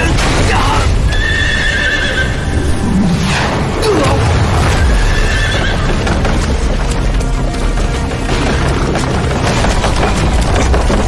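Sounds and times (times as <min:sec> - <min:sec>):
horses whinnying: 0:01.0 - 0:03.0, 0:03.9 - 0:06.4.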